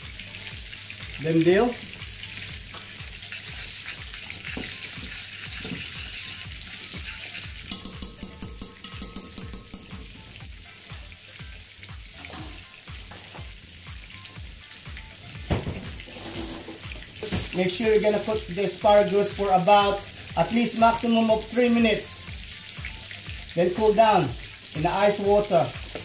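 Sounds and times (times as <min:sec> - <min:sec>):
fish sizzling in frying pan: 0:00.0 - 0:26.0
spoon stirring sauce in pot: 0:02.9 - 0:10.1.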